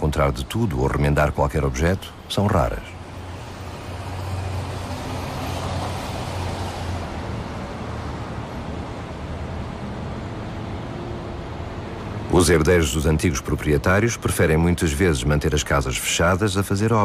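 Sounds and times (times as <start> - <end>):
city traffic rumble: 0.0 - 17.0.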